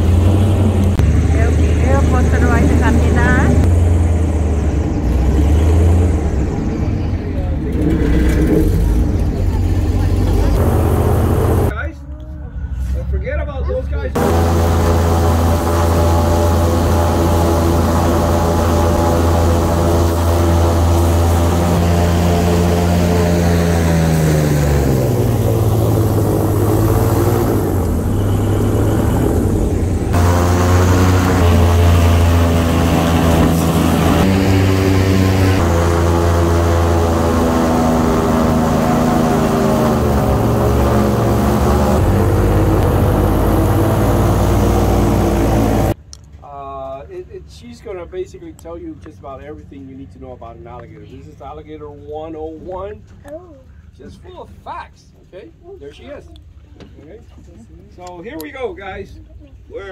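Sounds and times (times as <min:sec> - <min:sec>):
airboat engine and propeller drone: 0:00.0 - 0:11.7, 0:14.1 - 0:46.0.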